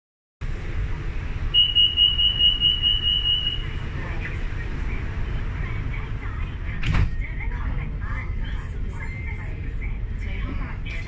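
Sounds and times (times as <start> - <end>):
train rumble: 0.4 - 11.0
high-pitched door warning beep: 1.6 - 3.8.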